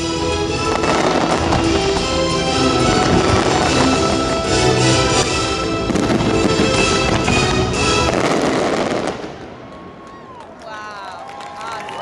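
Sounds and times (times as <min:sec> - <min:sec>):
music: 0:00.0 - 0:09.1
fireworks crackling loudly: 0:00.4 - 0:12.0
spectators cheering: 0:09.4 - 0:12.0.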